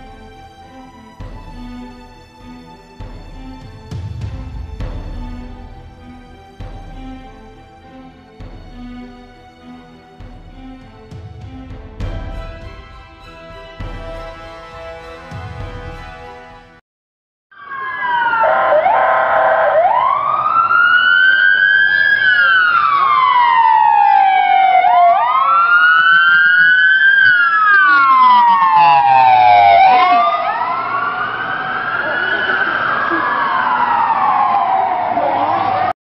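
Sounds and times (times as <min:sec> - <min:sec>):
emergency sirens wailing: 0:17.5 - 0:36.0.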